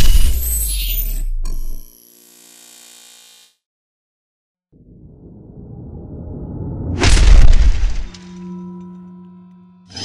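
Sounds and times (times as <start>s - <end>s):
sharp hit: 6.4s - 10.0s.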